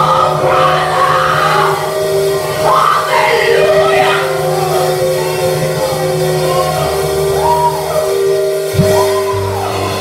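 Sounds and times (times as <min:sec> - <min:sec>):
sustained keyboard chords: 0:00.0 - 0:10.0.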